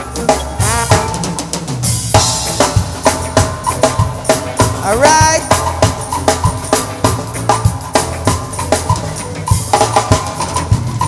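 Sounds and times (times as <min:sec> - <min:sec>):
bass guitar line: 0:00.0 - 0:11.0
drum kit strikes: 0:00.0 - 0:11.0
stage band playing live: 0:00.0 - 0:11.0.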